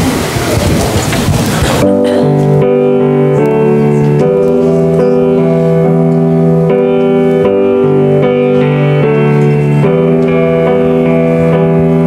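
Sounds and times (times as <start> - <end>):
band playing held chords: 0.0 - 12.0
congregation rustling and shuffling: 0.0 - 12.0.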